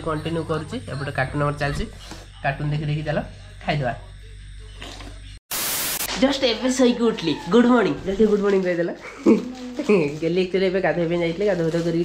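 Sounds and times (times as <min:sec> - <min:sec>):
static hiss burst: 0:05.5 - 0:06.2.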